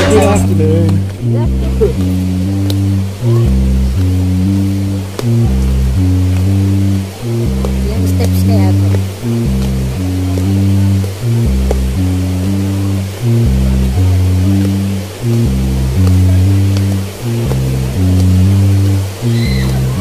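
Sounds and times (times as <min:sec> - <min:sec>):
music with deep bass line: 0:00.0 - 0:20.0.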